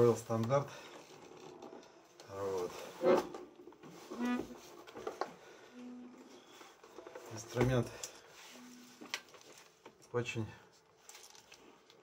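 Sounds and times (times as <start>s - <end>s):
accordion being handled: 0.9s - 10.0s.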